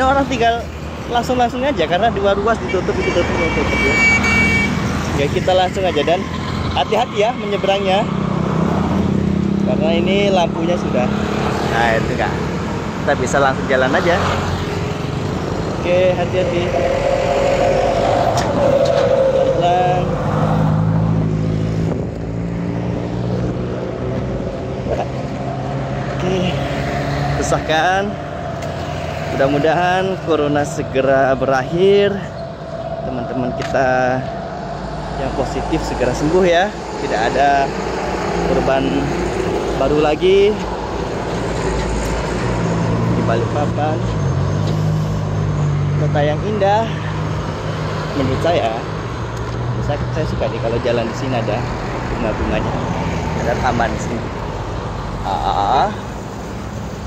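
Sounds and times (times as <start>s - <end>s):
vehicle engines humming: 0.0s - 57.0s
car driving past: 14.2s - 24.4s.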